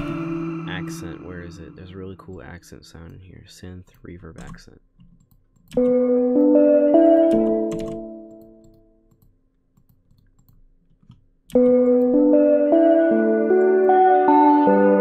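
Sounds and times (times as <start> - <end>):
synth notes with reverb: 0.0 - 2.5, 5.8 - 8.7, 11.6 - 15.0.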